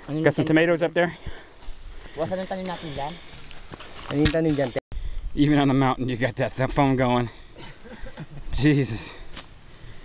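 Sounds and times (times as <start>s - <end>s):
people talking: 8.5s - 9.2s.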